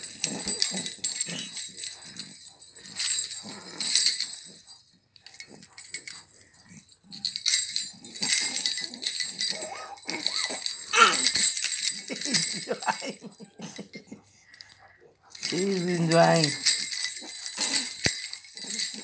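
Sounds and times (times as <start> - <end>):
baby rattle bells jingling: 0.0 - 19.0
baby babbling and squealing: 9.6 - 11.3.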